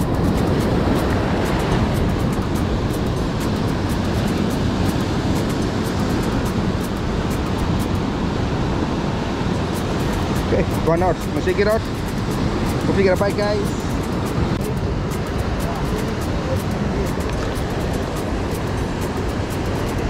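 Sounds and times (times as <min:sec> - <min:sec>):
surf washing over rocks: 0:00.0 - 0:20.0.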